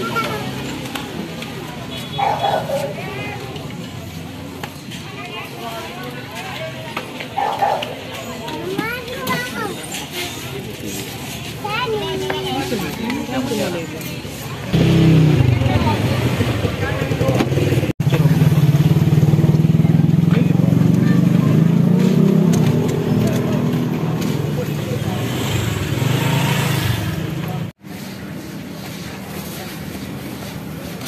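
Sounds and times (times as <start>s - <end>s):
motorcycle engine running: 14.7s - 27.7s.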